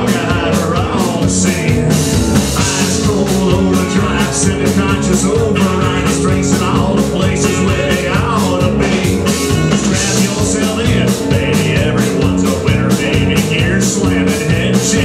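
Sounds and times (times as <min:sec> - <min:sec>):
driving drum beat: 0:00.0 - 0:15.0
live rock band playing: 0:00.0 - 0:15.0.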